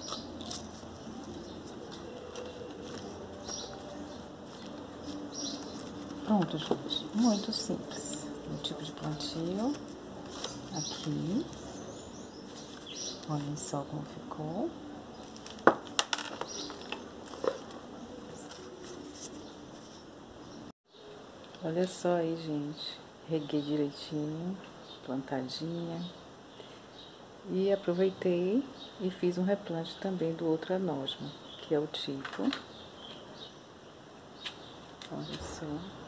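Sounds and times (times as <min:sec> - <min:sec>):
hands rustling potting mix: 0:00.0 - 0:14.1, 0:15.2 - 0:20.1.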